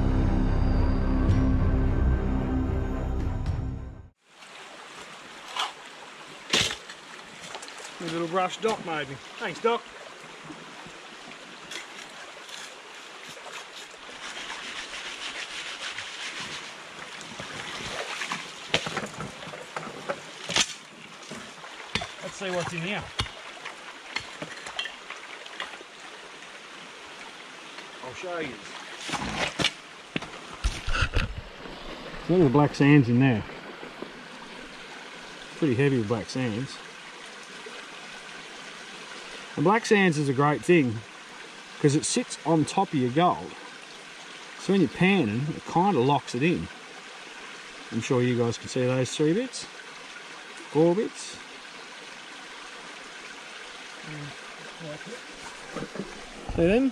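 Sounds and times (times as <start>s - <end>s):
creek water running: 4.2s - 56.9s
water splashes: 4.2s - 56.9s.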